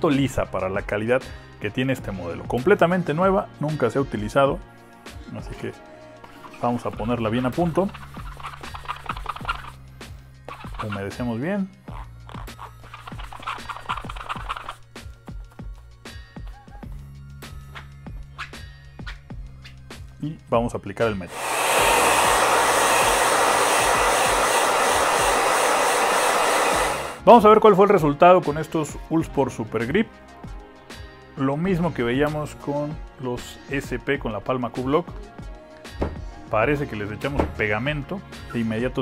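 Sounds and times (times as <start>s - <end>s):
background music: 0.0s - 39.0s
hair dryer blowing: 21.3s - 27.2s.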